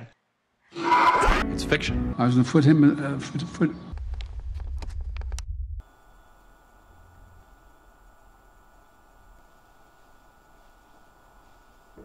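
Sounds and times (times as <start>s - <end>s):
low rumble with clicks: 3.9s - 5.8s
high-pitched electrical hum: 4.0s - 12.0s
steady hiss: 5.8s - 12.0s.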